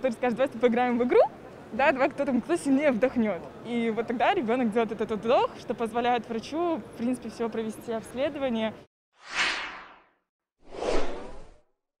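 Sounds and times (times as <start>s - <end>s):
whoosh sound effects: 9.2s - 11.6s.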